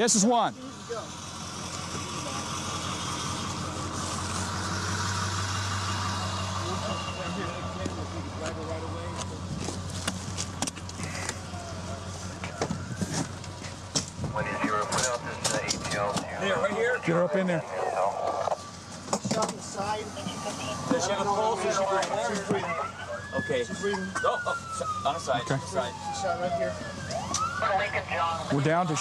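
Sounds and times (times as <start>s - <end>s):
vehicle engine idling: 0.6s - 23.6s.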